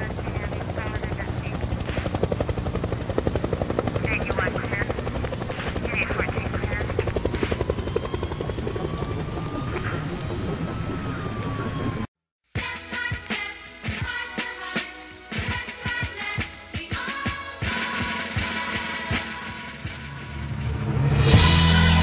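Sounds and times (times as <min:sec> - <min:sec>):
indistinct voices: 0:00.0 - 0:01.7, 0:04.0 - 0:05.1, 0:05.7 - 0:07.3
helicopter rotor beating: 0:00.0 - 0:12.1
thin rising tone: 0:07.0 - 0:12.1.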